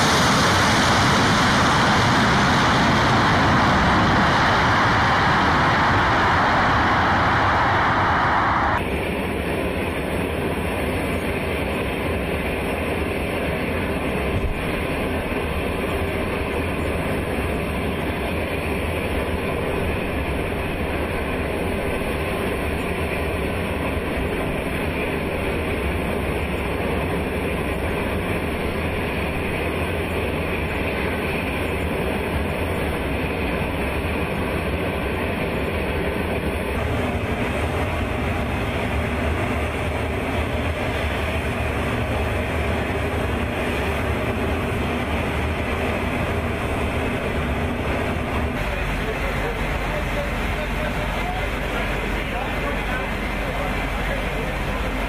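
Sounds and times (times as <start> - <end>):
jet engine roar: 0.0 - 55.0.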